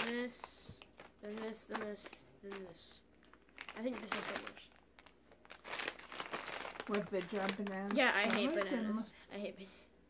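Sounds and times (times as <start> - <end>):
plastic snack bags crinkling: 0.0 - 8.9.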